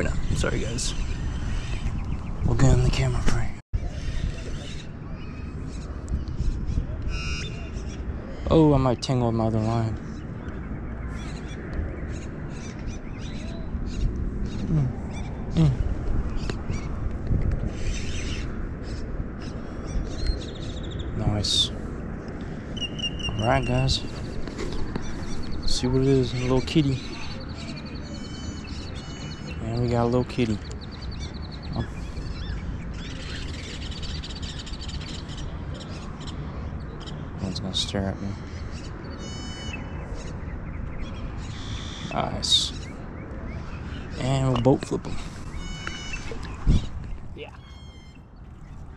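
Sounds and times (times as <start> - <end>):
low falling bird calls: 22.4 - 48.9
high bird chirps: 22.7 - 37.2, 45.4 - 48.9.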